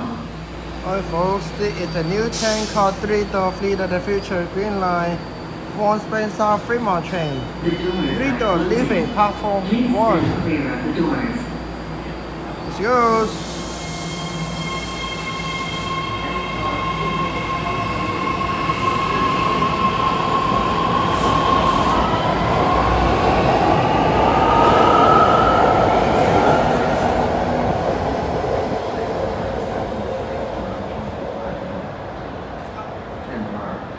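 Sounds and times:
electric train whine: 2.8s - 31.9s.

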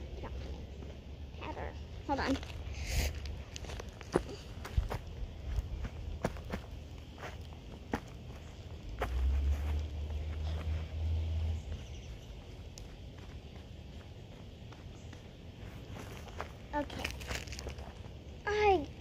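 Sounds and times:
footsteps on grass and dirt: 2.1s - 18.2s.

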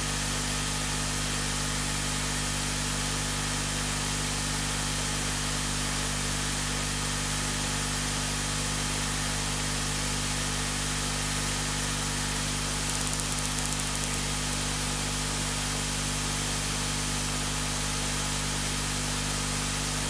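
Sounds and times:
faint rapid ticks: 12.9s - 14.3s.

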